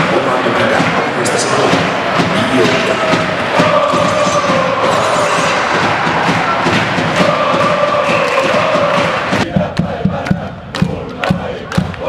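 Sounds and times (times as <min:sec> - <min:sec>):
crowd chanting: 0:00.0 - 0:12.0
steady beat: 0:00.0 - 0:12.0.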